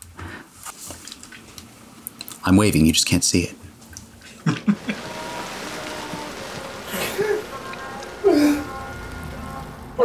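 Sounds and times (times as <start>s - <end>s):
steady rain falling: 4.5s - 10.0s
music playing: 4.8s - 10.0s.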